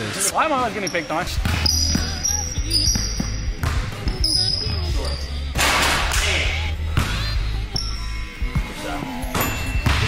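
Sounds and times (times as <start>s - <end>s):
sneaker squeaks: 0.6s - 5.6s
basketball bouncing on wooden floor: 2.8s - 4.5s.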